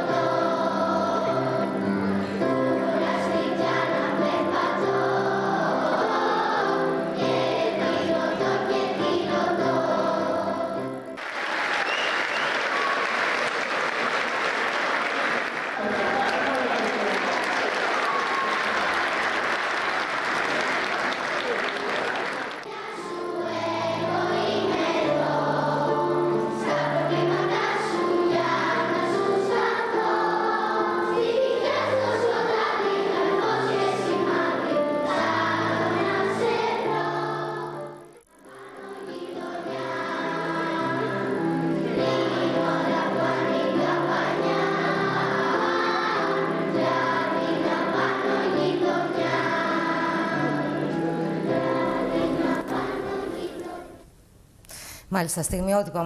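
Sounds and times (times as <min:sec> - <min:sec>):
children's choir singing: 0:00.0 - 0:54.1
audience applauding: 0:11.2 - 0:23.0.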